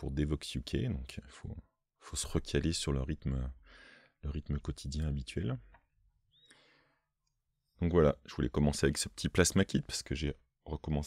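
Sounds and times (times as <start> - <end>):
man speaking: 0.0 - 3.6, 4.2 - 5.8, 7.8 - 11.0.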